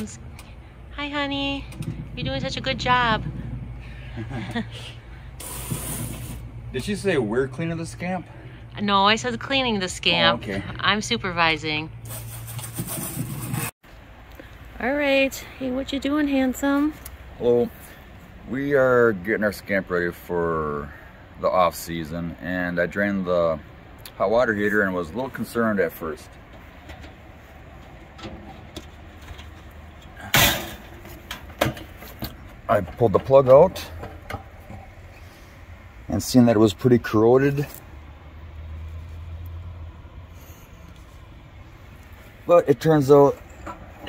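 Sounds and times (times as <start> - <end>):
hand scrubbing fibreglass: 12.0 - 13.7.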